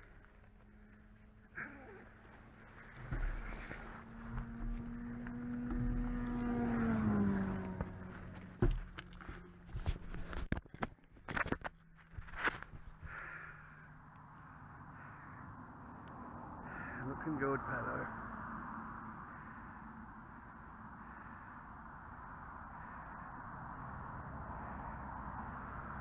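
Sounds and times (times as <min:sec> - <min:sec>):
engine hum: 0:00.0 - 0:26.0.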